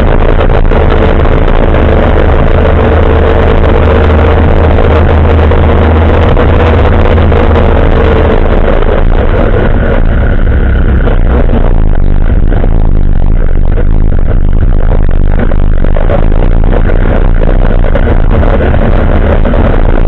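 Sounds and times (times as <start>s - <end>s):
quad bike engine running: 0.0s - 20.0s.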